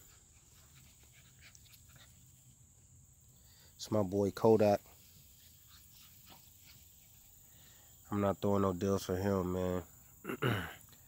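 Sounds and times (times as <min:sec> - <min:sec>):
puppy sounds: 0:00.0 - 0:02.6
faint high hiss: 0:00.0 - 0:11.0.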